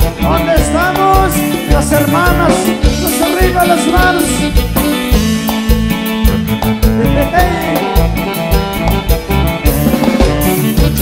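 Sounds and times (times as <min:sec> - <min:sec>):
live band playing latin dance tune: 0:00.0 - 0:11.0.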